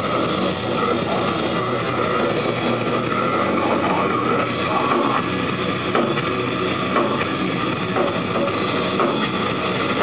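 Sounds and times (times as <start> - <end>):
distorted guitars: 0.0 - 10.0
drums: 0.0 - 10.0.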